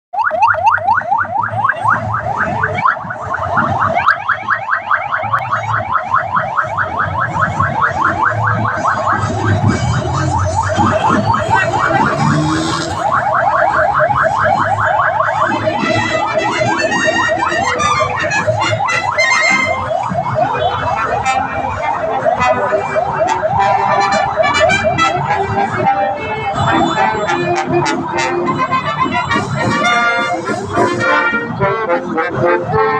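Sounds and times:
police motorcycle sirens yelping: 0:00.2 - 0:32.9.

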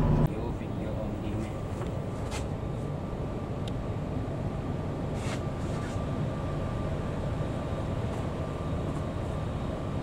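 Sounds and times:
bus engine rumble: 0:00.0 - 0:10.0.

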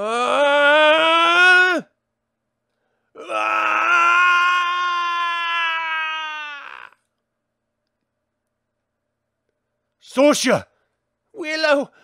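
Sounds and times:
man screaming: 0:00.0 - 0:01.9, 0:03.2 - 0:07.0.

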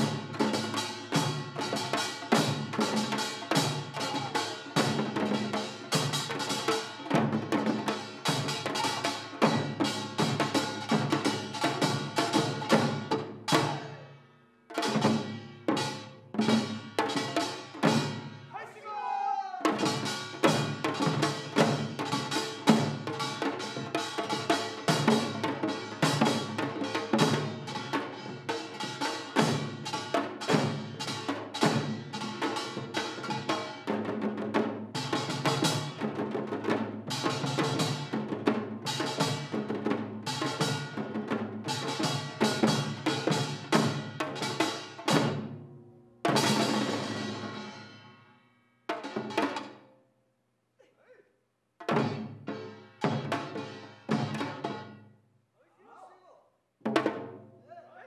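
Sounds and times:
hourglass drum rhythm: 0:00.0 - 0:14.1, 0:14.7 - 0:18.6, 0:19.6 - 0:48.2, 0:48.9 - 0:49.9, 0:51.8 - 0:55.1.

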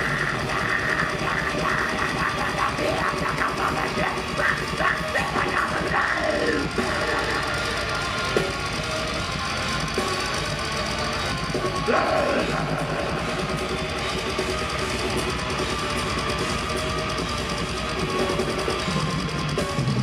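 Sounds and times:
growled vocals: 0:00.0 - 0:07.7, 0:11.8 - 0:13.5
live metal band playing: 0:00.0 - 0:20.0.

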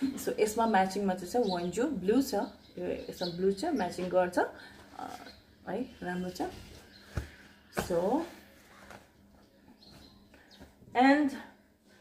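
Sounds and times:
woman's voice: 0:00.0 - 0:06.6, 0:07.8 - 0:08.4, 0:10.9 - 0:11.6.

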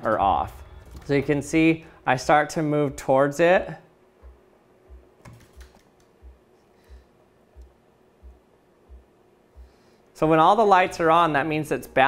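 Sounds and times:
faint steady hum: 0:00.0 - 0:12.0
soft low thumps: 0:04.2 - 0:09.8.

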